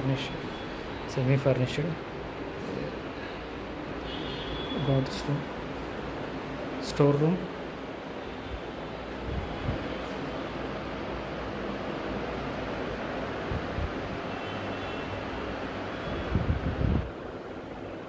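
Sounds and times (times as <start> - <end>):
wind on microphone: 16.2 - 17.2.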